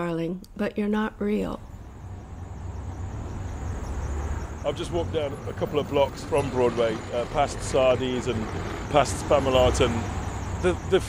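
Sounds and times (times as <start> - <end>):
traffic rumble: 0.0 - 11.0.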